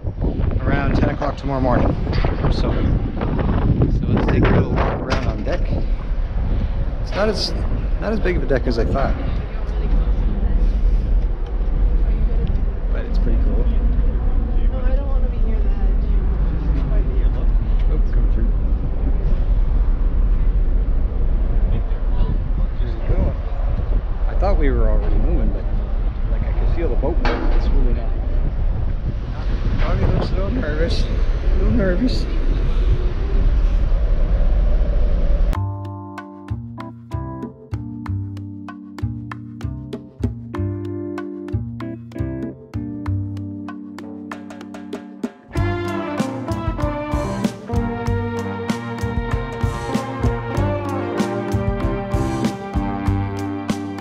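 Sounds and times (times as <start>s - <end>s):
wind buffeting microphone: 0.0s - 35.6s
music with plucked attacks: 35.6s - 54.0s.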